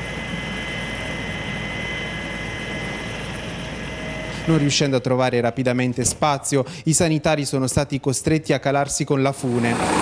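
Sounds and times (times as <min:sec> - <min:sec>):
helicopter rotor rush: 0:00.0 - 0:05.5, 0:09.2 - 0:10.0
helicopter engine whine: 0:00.0 - 0:06.9, 0:09.3 - 0:10.0.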